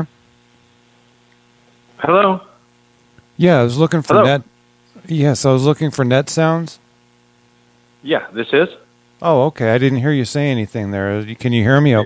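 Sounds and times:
telephone line electrical hum: 0:00.0 - 0:12.0.

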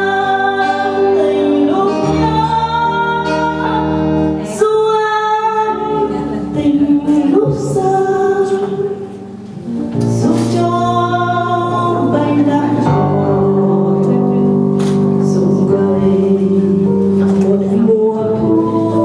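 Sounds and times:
instrumental accompaniment: 0:00.0 - 0:19.0
woman singing a ballad: 0:00.0 - 0:19.0.

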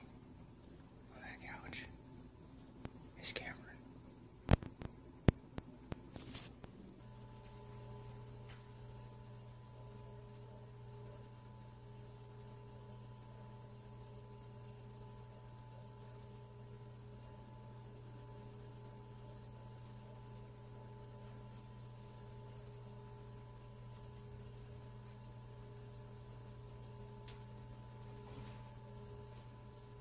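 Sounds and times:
faint electrical hum: 0:00.0 - 0:30.0.

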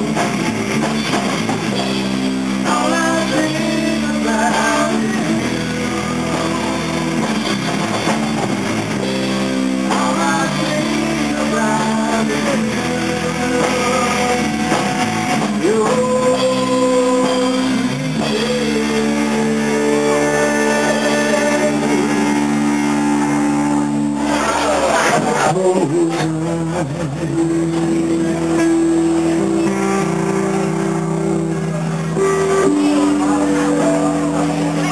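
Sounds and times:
bass guitar: 0:00.0 - 0:34.9
drum kit: 0:00.0 - 0:34.9
electric guitar: 0:00.0 - 0:34.9.

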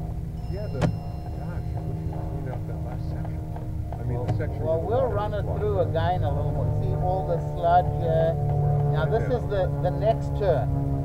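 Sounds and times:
machinery rumbling and humming: 0:00.0 - 0:11.0
faint talk: 0:09.0 - 0:09.8.

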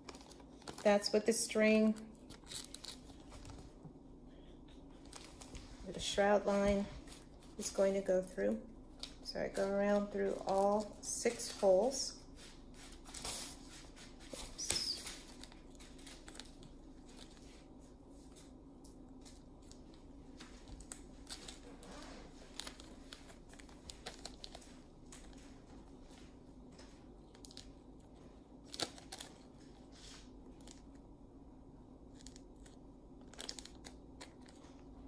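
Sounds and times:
sharp plastic crackles: 0:00.0 - 0:01.2, 0:01.8 - 0:03.8, 0:26.8 - 0:29.8, 0:32.1 - 0:35.0
plastic canopy rustling and crinkling: 0:19.2 - 0:30.3.

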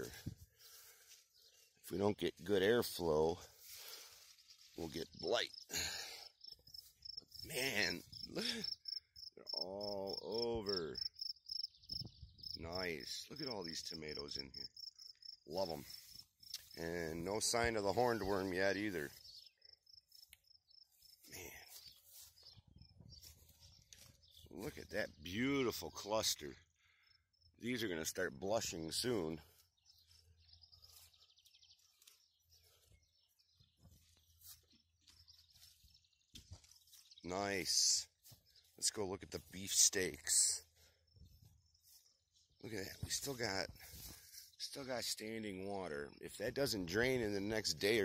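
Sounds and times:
crickets chirping: 0:05.2 - 0:16.6.

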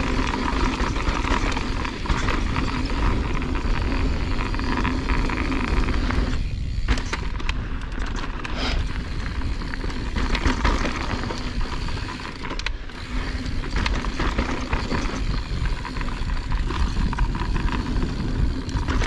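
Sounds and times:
bike rattling over bumps: 0:00.0 - 0:19.0
bike tyres crunching over dirt: 0:00.0 - 0:19.0.

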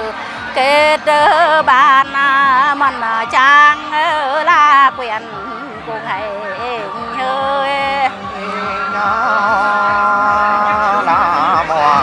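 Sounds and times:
person singing folk song softly: 0:00.0 - 0:12.0.

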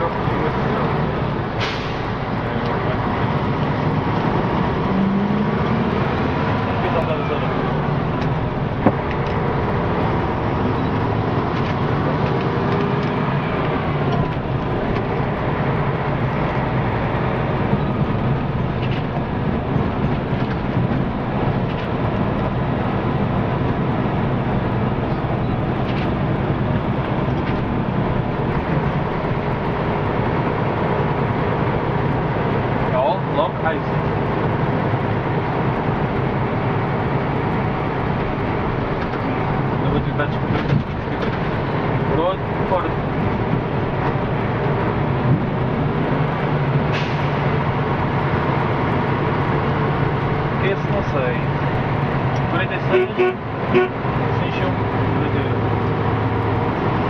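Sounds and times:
bus engine and road drone: 0:00.0 - 0:57.0.

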